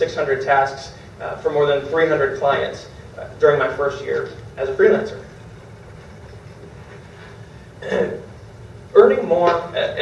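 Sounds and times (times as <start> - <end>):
low room hum: 0.0 - 10.0
man clearing his throat: 7.8 - 8.3.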